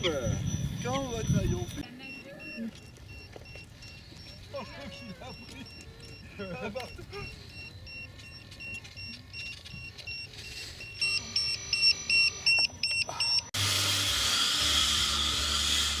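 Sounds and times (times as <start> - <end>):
short electronic beeps: 0.0 - 13.5.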